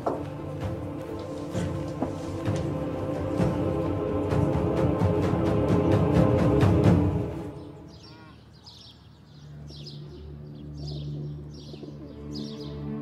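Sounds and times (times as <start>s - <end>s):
loud dramatic music: 0.0s - 7.9s
faint low music tone: 0.0s - 13.0s
birds chirping: 5.2s - 13.0s.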